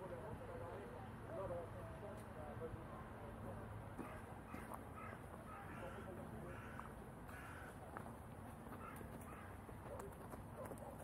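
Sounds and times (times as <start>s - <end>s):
crow cawing: 4.0s - 7.8s, 8.8s - 9.6s.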